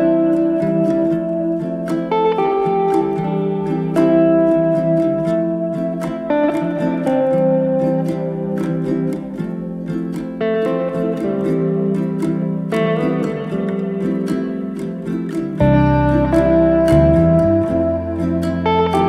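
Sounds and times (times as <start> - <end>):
instrumental music with plucked notes: 0.0 - 19.0.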